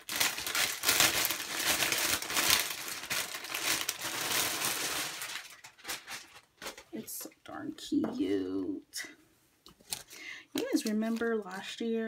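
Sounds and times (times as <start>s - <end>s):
plastic bag crinkling: 0.0s - 7.4s, 9.8s - 11.6s.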